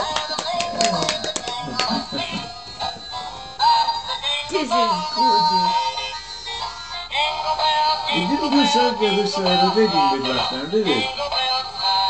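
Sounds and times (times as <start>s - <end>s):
toy playing synthetic singing song: 0.0s - 12.0s.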